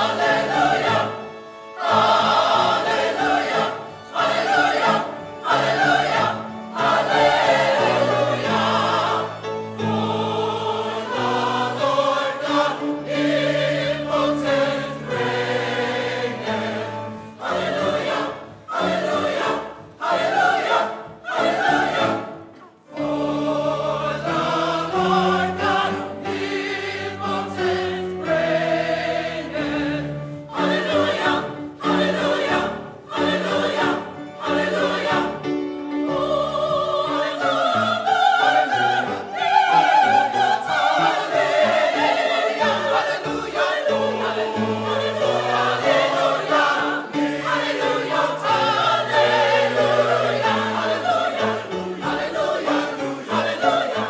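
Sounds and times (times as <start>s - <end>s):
mixed choir singing: 0.0s - 54.0s.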